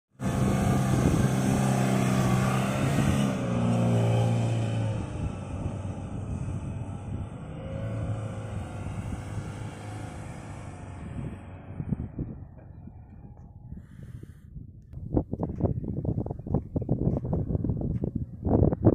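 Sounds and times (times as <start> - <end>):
truck engine under hard load: 0.1 - 14.6.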